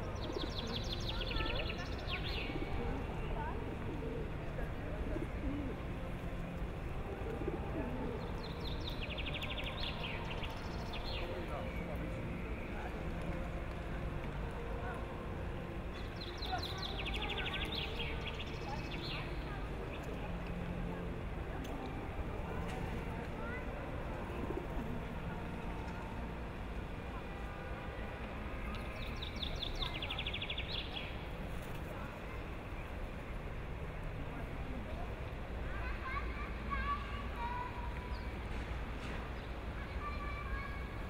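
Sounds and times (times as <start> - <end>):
songbird chirping and trilling: 0.0 - 3.5, 8.0 - 12.8, 15.9 - 20.6, 28.7 - 31.7
low background noise: 0.0 - 41.0.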